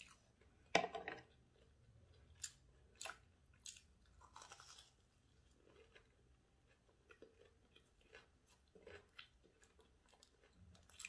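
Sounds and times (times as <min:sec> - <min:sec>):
crunchy chewing: 0:01.6 - 0:11.0.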